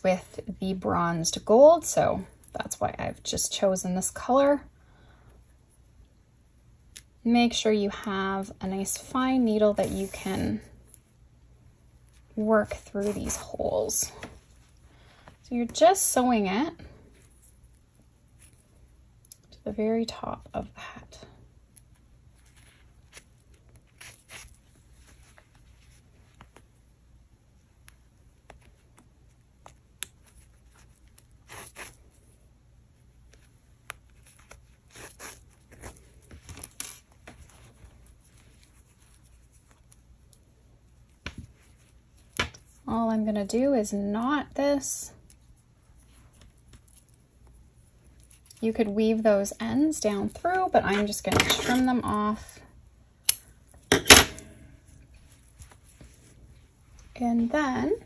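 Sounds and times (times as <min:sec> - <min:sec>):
yarn rustling through wool stitches: 0:05.4 - 0:52.6, 0:54.9 - 0:58.0.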